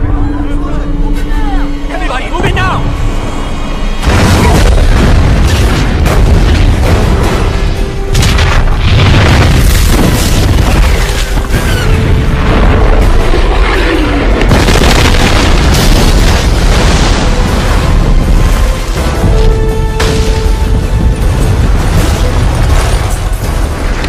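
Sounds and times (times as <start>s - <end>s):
action film music: 0.0s - 24.0s
deep rumbling: 0.0s - 24.0s
loud booms: 4.0s - 24.0s.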